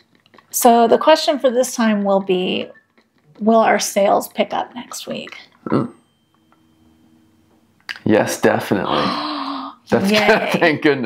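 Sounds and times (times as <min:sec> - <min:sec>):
faint low hum: 0:03.3 - 0:11.0.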